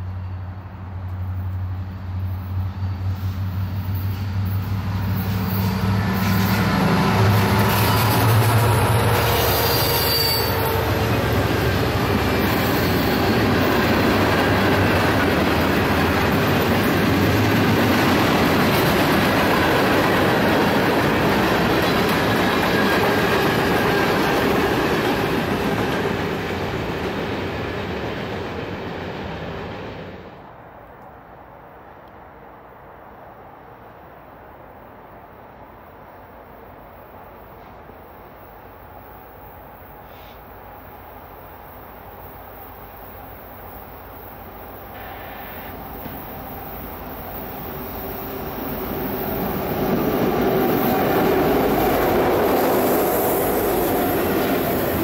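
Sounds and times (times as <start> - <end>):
locomotive engine drone: 0.0 - 30.4
train cars rumbling on rails: 0.0 - 30.4, 37.1 - 55.0
high wheel squeal: 7.7 - 11.3.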